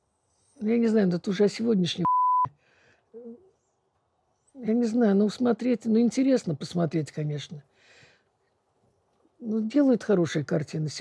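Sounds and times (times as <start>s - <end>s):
censor bleep tone: 2.0s - 2.5s.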